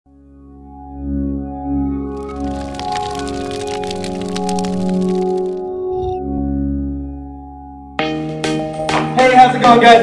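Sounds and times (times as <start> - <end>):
sustained synthesizer chord: 0.1 - 8.4
dense crackling sound effect: 2.0 - 6.2.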